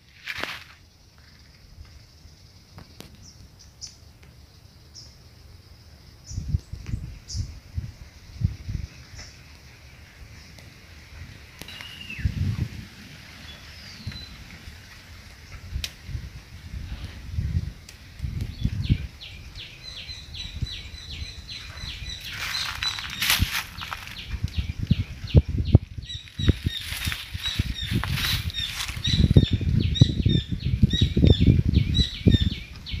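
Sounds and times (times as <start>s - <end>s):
leaves rustling: 0.0s - 1.5s, 6.6s - 30.8s
wind buffeting microphone: 6.2s - 33.0s
high chirping call: 11.6s - 12.4s, 18.6s - 33.0s
microphone handling rumble: 20.3s - 33.0s.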